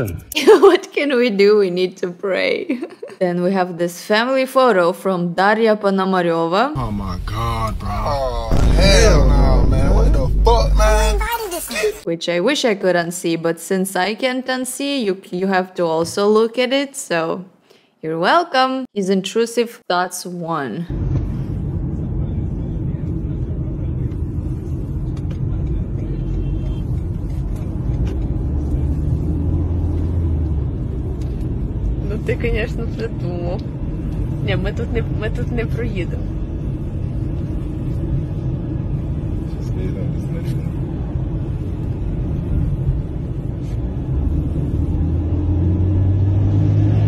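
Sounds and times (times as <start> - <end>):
deep engine drone: 6.8 - 12.0, 20.9 - 47.0
road and engine rumble in car: 6.8 - 12.0, 20.9 - 47.0.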